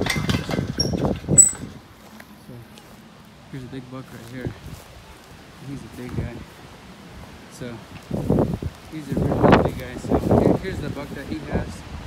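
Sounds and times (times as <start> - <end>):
metal gate latch rattling: 0.0 - 1.8
high metallic tone: 1.4 - 1.8.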